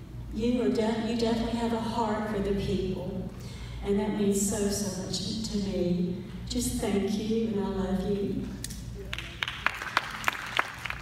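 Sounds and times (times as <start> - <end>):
people clapping: 9.0 - 11.0.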